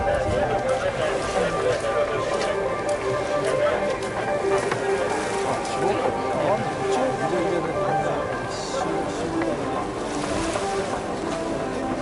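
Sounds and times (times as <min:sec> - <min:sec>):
wind on microphone: 0:00.0 - 0:01.6
murmur of distant voices: 0:00.0 - 0:12.0
water at the shore: 0:00.0 - 0:12.0.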